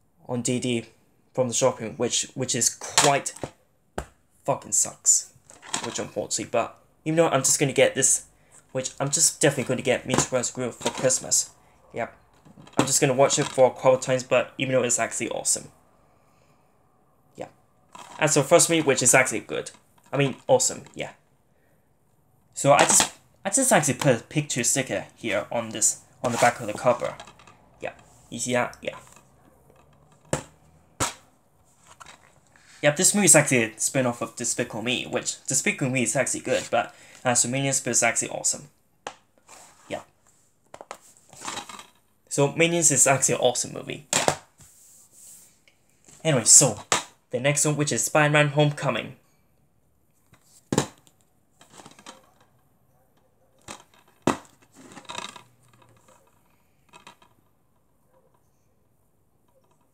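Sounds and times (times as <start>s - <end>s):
plastic case clatter and crinkle: 5.4s - 6.1s, 10.1s - 11.3s, 17.9s - 19.0s, 26.2s - 28.0s, 31.8s - 32.5s, 40.7s - 42.0s, 50.3s - 52.6s, 53.6s - 57.5s.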